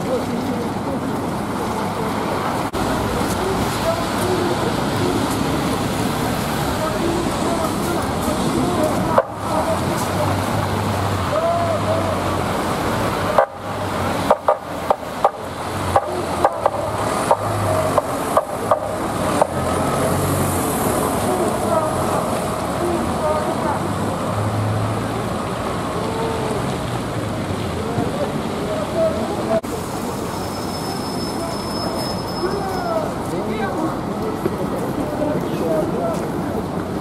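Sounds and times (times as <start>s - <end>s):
bus pulling away: 0.0s - 37.0s
distant voices: 0.0s - 37.0s
street traffic: 0.0s - 37.0s.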